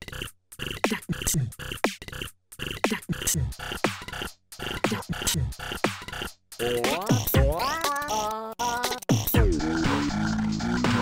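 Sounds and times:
looped electronic drum beat: 0:00.0 - 0:11.0
chopped electronic sounds: 0:01.7 - 0:11.0.

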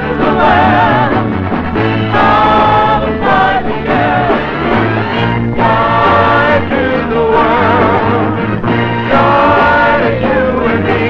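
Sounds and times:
upbeat pop song with group singing: 0:00.0 - 0:11.0.

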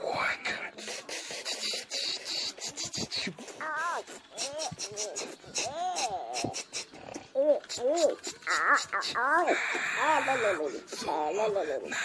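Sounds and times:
person making play cries: 0:01.5 - 0:09.6.

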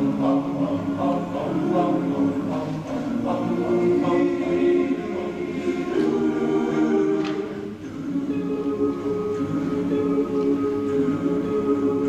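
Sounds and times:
male choir singing a cappella: 0:00.0 - 0:12.0.

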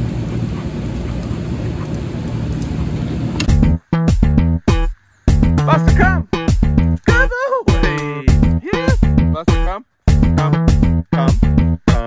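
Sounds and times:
low room rumble: 0:00.0 - 0:03.8
guitar and bass music: 0:03.4 - 0:12.0.

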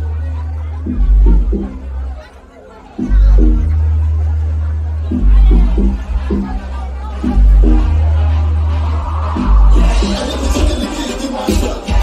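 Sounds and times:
club dance music with heavy bass: 0:00.0 - 0:12.0
crowd chatter: 0:00.0 - 0:12.0.

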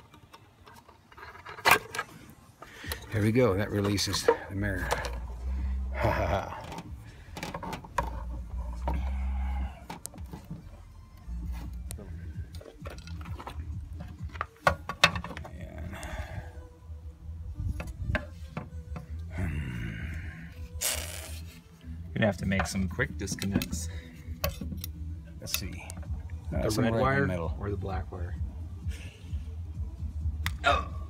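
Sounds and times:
background music: 0:00.0 - 0:31.0.

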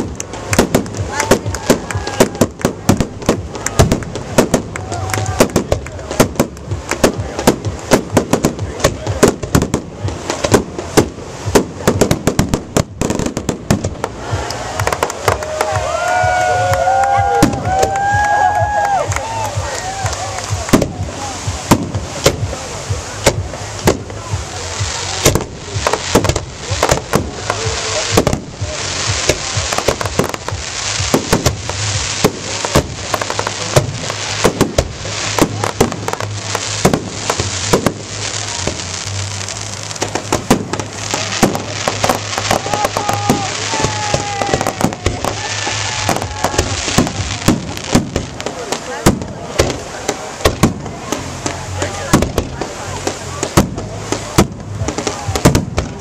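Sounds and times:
fireworks bursting with sharp bangs: 0:00.0 - 0:56.0
fireworks crackling: 0:00.0 - 0:56.0.

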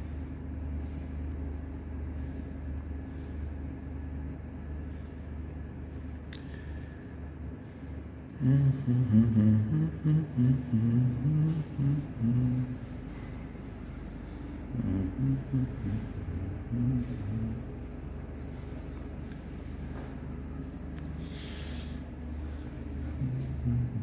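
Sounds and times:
steady low hum: 0:00.0 - 0:24.0
low-pitched voice: 0:23.2 - 0:24.0.

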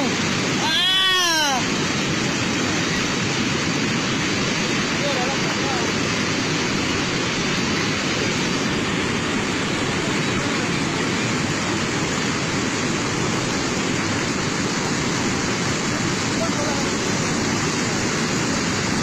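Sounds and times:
mud flow rushing: 0:00.0 - 0:19.0.

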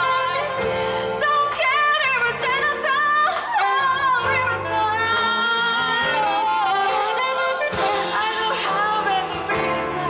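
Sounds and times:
big band playing: 0:00.0 - 0:10.0
woman singing: 0:00.0 - 0:10.0.

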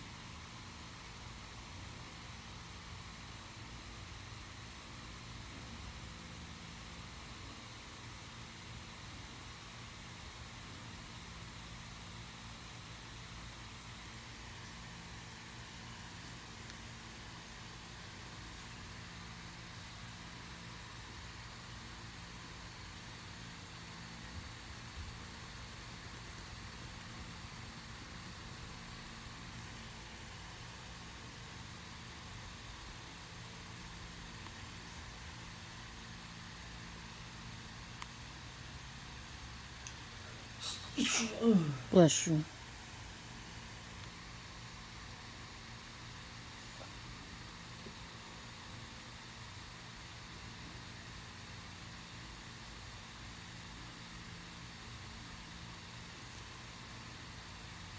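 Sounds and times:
low hum with faint hiss: 0:00.0 - 0:57.9.

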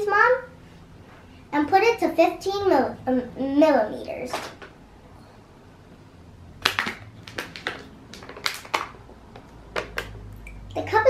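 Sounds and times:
plastic packaging crackling: 0:06.6 - 0:10.2.

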